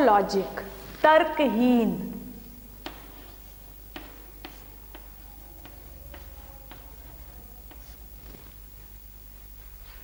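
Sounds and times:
faint low hum: 0.0s - 10.0s
chalk tapping on a chalkboard: 2.7s - 8.5s.

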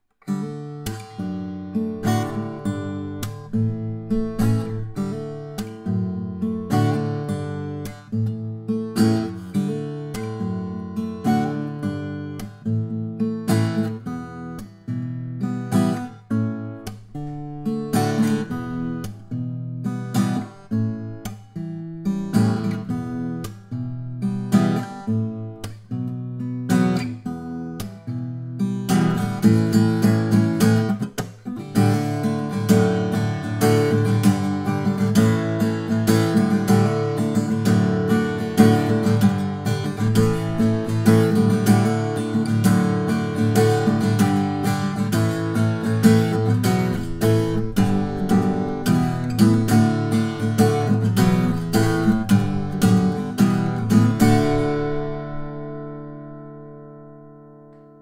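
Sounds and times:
fingerpicked acoustic guitar: 0.0s - 58.0s.

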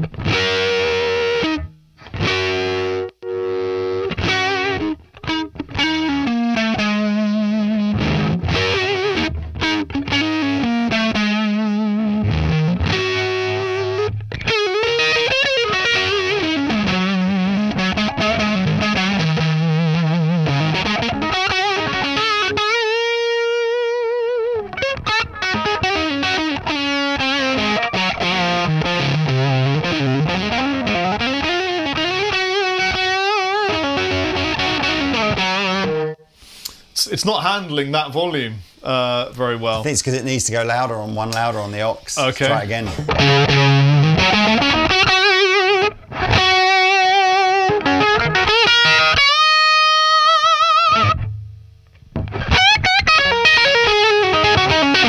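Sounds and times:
overdriven electric guitar riffs: 0.0s - 36.9s, 42.4s - 55.0s.

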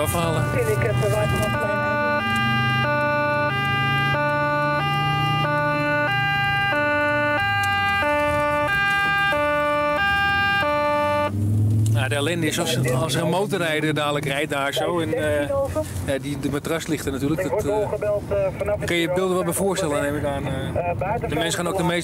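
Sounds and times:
two-tone police siren: 0.0s - 11.4s
low vehicle drone: 0.0s - 22.0s.

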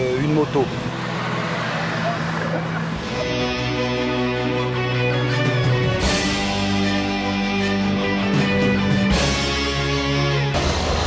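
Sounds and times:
vehicle engine hum: 0.0s - 5.9s
road noise: 0.0s - 11.0s.

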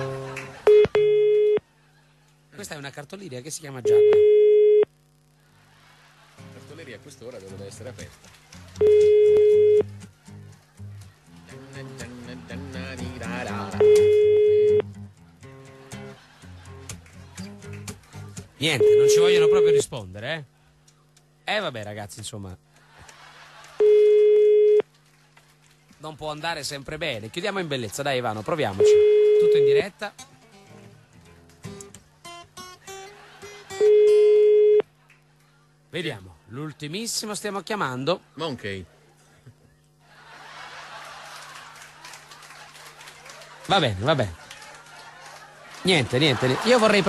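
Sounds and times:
telephone ringback beep: 0.7s - 1.6s, 3.9s - 4.9s, 8.8s - 9.8s, 13.8s - 14.8s, 18.8s - 19.8s, 23.8s - 24.8s, 28.8s - 29.8s, 33.8s - 34.8s
background music: 8.6s - 19.6s.

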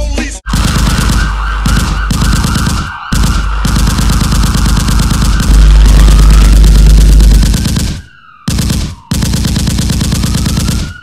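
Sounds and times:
rapid rattling gunfire: 0.5s - 11.0s
deep bass rumble: 5.2s - 7.7s.

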